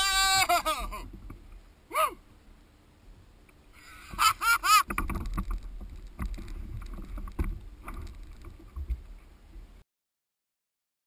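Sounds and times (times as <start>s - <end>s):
man laughing: 0.0s - 1.1s, 4.0s - 4.9s
water sounds: 0.0s - 9.8s
wind rumble on microphone: 4.1s - 9.8s.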